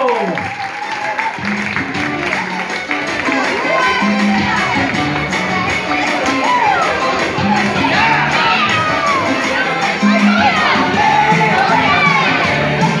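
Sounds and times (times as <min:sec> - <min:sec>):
children shouting and cheering: 0:00.0 - 0:13.0
dance music with bass line: 0:01.3 - 0:13.0.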